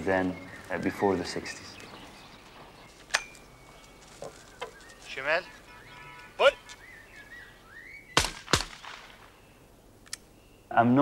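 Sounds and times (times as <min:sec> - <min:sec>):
shotgun shots with echo: 0:08.2 - 0:09.3.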